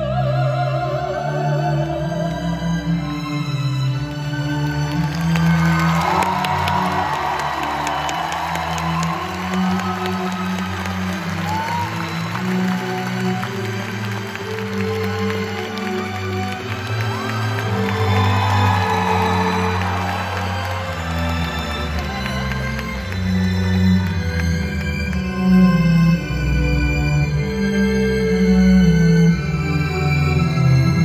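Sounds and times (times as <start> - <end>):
orchestra sustained chords: 0.0 - 31.0
audience cheering and whooping: 4.9 - 23.4.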